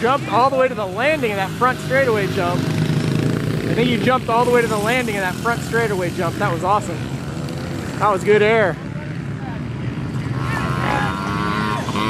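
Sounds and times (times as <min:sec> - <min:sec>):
dirt bike engine running: 0:00.0 - 0:12.0.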